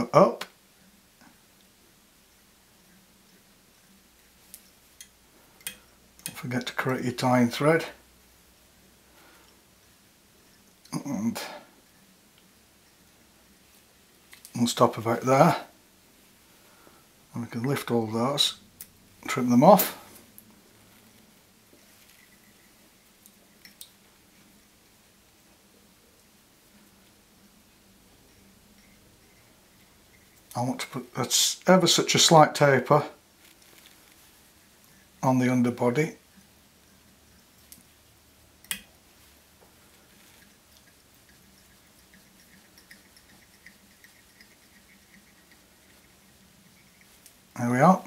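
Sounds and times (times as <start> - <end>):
light metal ticking: 40.2 - 47.4.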